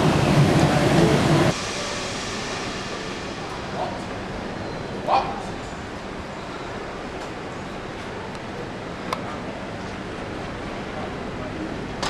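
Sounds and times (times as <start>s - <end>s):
outdoor ambience: 0.0s - 12.0s
train running rumble: 0.0s - 12.0s.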